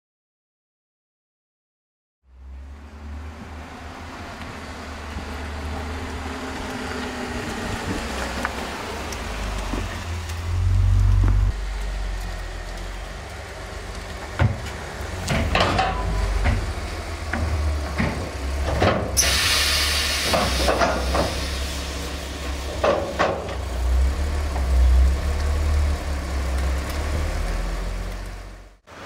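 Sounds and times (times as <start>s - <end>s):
car engine low rumble: 2.3s - 19.2s, 20.3s - 28.8s
short burst of hiss: 19.2s - 22.8s.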